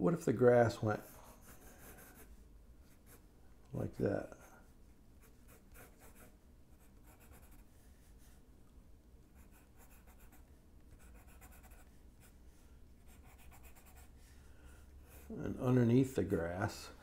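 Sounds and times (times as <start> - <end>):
pencil scratching on paper: 1.0 - 3.2, 3.9 - 8.4, 9.3 - 14.4, 15.0 - 15.6.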